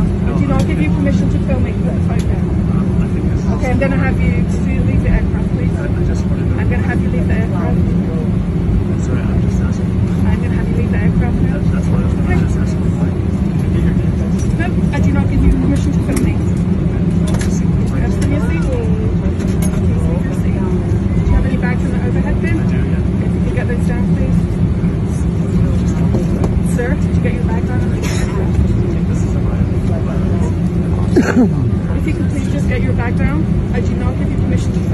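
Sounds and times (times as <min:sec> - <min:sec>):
airplane cabin hum: 0:00.0 - 0:34.9
faint voices talking: 0:00.0 - 0:34.9.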